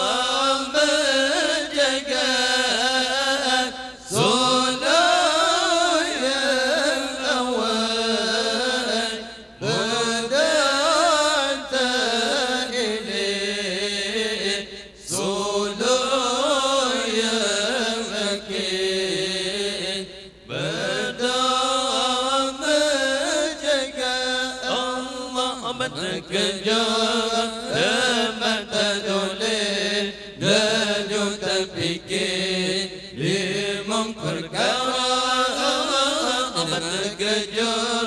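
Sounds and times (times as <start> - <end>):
man chanting through loudspeakers: 0.0 - 38.0.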